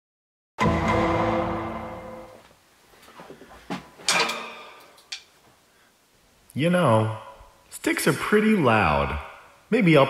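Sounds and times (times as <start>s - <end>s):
drum and cymbal strikes: 0.6s - 2.3s
ringing drum hit: 0.6s - 2.4s.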